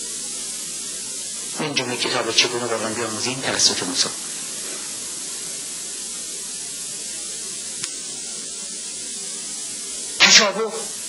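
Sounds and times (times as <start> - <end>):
broadcast recording hiss: 0.0 - 11.0
faint click: 7.8 - 8.0.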